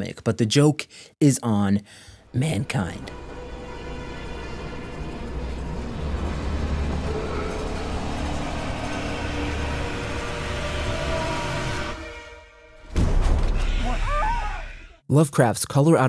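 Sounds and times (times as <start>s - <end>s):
eerie droning horror score: 2.6s - 15.0s.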